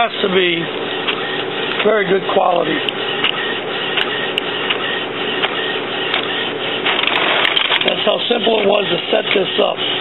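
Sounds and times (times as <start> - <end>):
inkjet printer printing: 0.0 - 10.0
printer paper feed clicks: 0.7 - 10.0.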